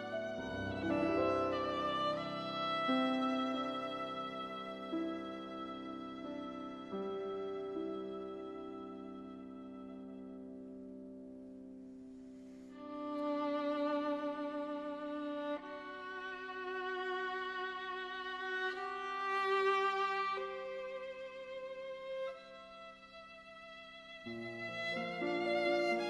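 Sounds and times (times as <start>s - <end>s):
violin melody with vibrato: 0.0s - 10.5s, 12.7s - 26.0s
piano accompaniment: 0.0s - 21.6s, 24.0s - 26.0s.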